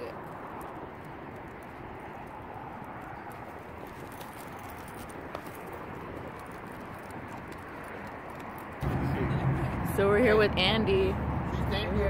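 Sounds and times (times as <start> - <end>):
footsteps on pavement: 0.2 - 9.8.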